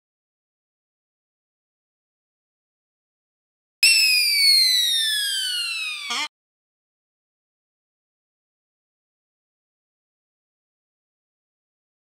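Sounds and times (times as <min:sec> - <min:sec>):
descending whistle tone: 0:03.8 - 0:06.3.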